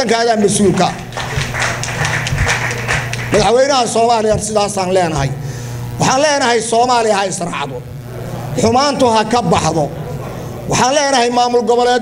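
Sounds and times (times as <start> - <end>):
audience applauding: 0.3 - 3.5.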